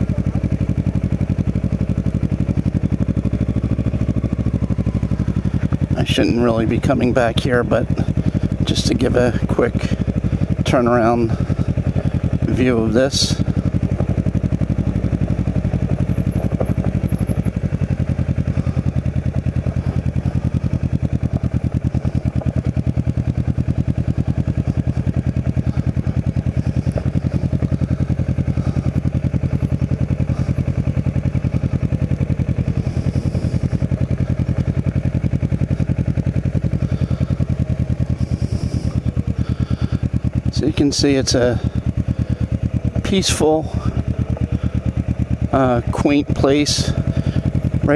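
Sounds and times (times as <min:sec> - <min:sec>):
motorcycle engine running: 0:00.0 - 0:47.9.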